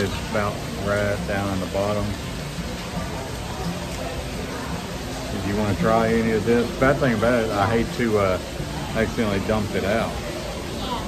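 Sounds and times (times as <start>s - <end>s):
distant voices: 0.0s - 11.0s
faint music: 0.0s - 11.0s.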